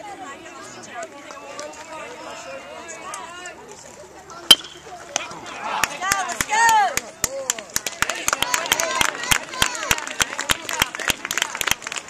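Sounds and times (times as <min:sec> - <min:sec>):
metal bat cracking a ball: 0:04.5 - 0:04.9.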